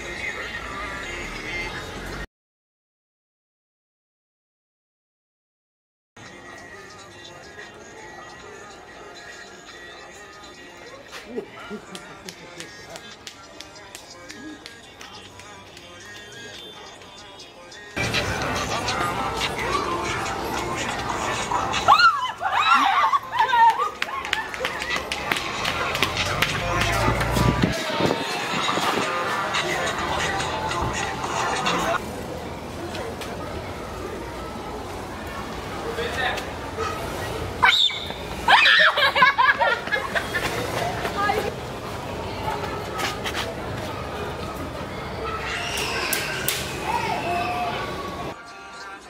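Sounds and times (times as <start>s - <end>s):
street noise: 0.0s - 2.3s, 6.2s - 49.0s
steady noisy background: 6.2s - 49.0s
woman shrieking in fright: 21.9s - 23.3s.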